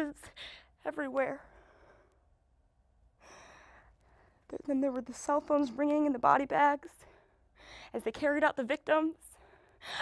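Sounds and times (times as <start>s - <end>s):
woman breathing softly: 1.4s - 2.4s, 3.2s - 4.5s, 7.0s - 8.0s.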